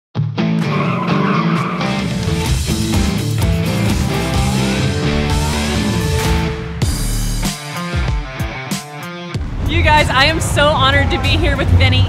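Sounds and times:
loud rock music: 0:00.2 - 0:12.0
car tires squealing: 0:00.6 - 0:02.2.

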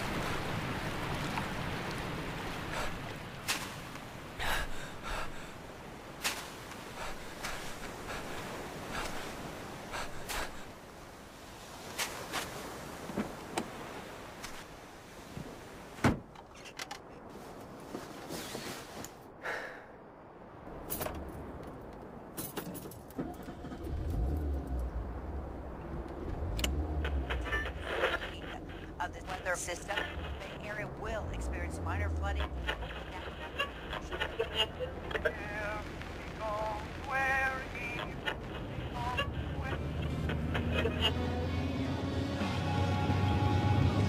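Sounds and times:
car engine starting and running: 0:23.1 - 0:33.0.

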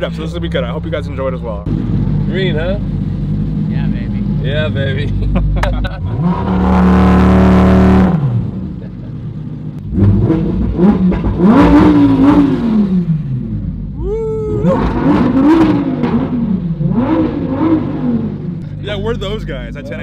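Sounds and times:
sports car engine revving: 0:00.0 - 0:20.0
car accelerating through gears: 0:06.0 - 0:08.6, 0:09.8 - 0:13.6, 0:14.5 - 0:18.8.

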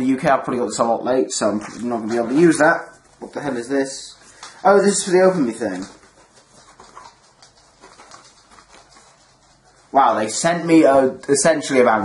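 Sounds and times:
paper card rustling: 0:01.4 - 0:10.7
soft paper crinkles: 0:01.4 - 0:11.8.

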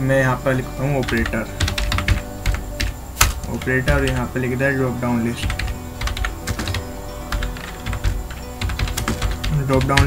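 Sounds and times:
music playing: 0:00.0 - 0:10.0
computer keyboard typing: 0:01.0 - 0:04.3, 0:05.4 - 0:10.0.

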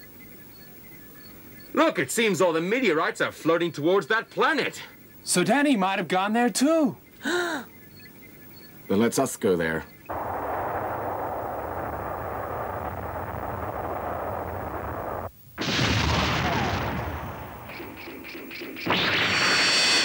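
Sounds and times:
loud explosion blast: 0:10.1 - 0:20.0
cartoon rushing noise: 0:18.8 - 0:20.0.

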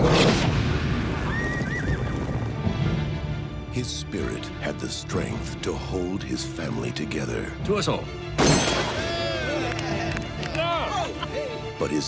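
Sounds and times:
background music: 0:00.3 - 0:12.0.

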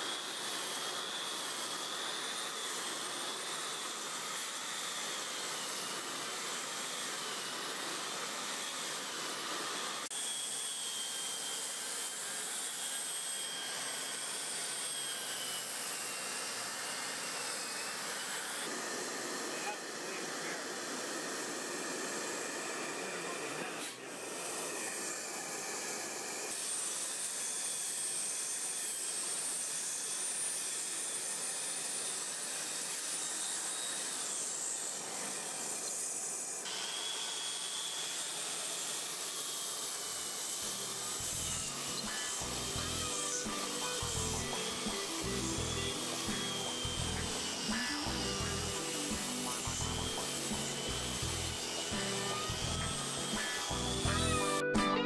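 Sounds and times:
angle grinder grinding mortar: 0:00.0 - 0:55.0.

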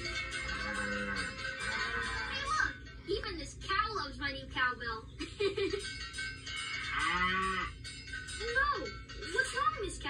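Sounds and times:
cartoon cow mooing: 0:00.5 - 0:02.4, 0:06.9 - 0:07.8.

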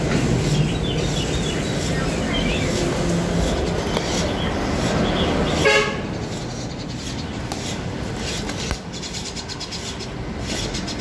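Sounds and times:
street traffic noise: 0:00.0 - 0:11.0
car horn honk: 0:05.6 - 0:06.0.

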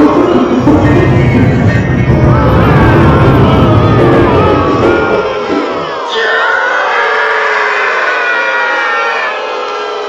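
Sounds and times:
band playing: 0:00.0 - 0:06.1.

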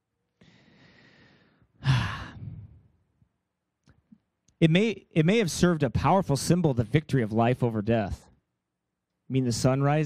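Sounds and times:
man sighing into microphone: 0:01.8 - 0:02.9.

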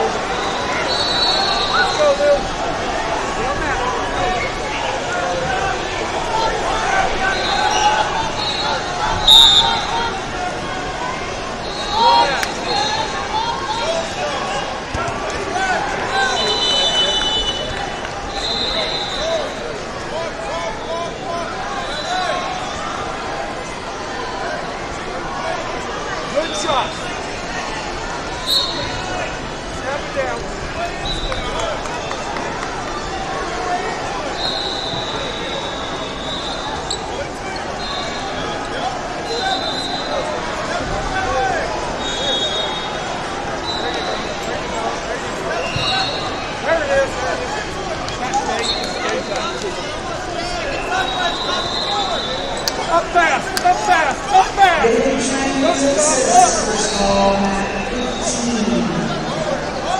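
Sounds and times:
crowd chatter in large hall: 0:00.0 - 0:59.9
referee's whistle blast: 0:08.4 - 0:09.9, 0:16.2 - 0:19.4, 0:28.4 - 0:29.0, 0:42.0 - 0:43.0.

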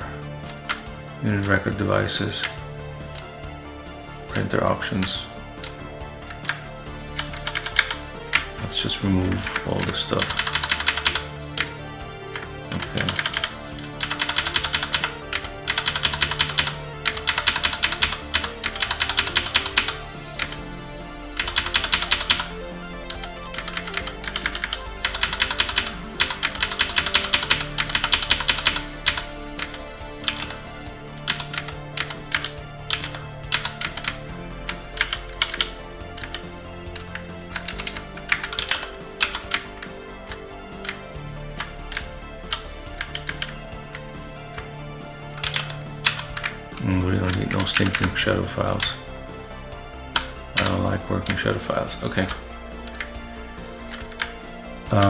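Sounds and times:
computer keyboard typing: 0:04.4 - 0:20.7, 0:21.4 - 0:41.0, 0:41.6 - 0:49.0, 0:50.1 - 0:53.2, 0:53.8 - 0:55.0.

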